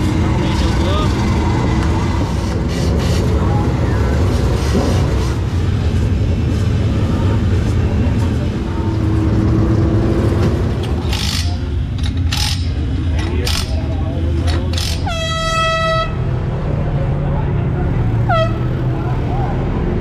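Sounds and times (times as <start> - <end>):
engines rumbling: 0.0 - 20.0.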